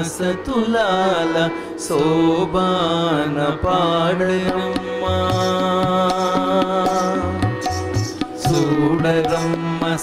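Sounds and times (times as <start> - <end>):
drum strokes: 5.4 - 10.0
solo voice singing: 8.4 - 10.0.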